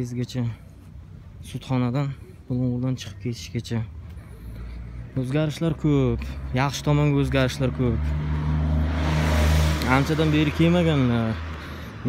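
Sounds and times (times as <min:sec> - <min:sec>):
car passing close by: 0:05.8 - 0:12.0.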